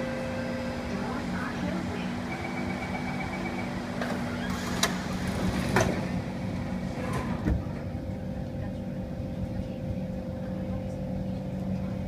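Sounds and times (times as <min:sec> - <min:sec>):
high warning tone: 0:00.0 - 0:01.2, 0:02.1 - 0:03.9
train electrical hum: 0:00.0 - 0:12.0
train doors thudding shut: 0:03.9 - 0:07.9.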